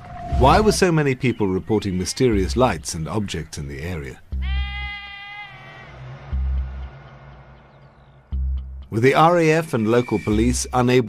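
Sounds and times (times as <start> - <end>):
low background music: 0.3 - 5.1, 5.8 - 11.0
sheep bleating: 4.3 - 6.0.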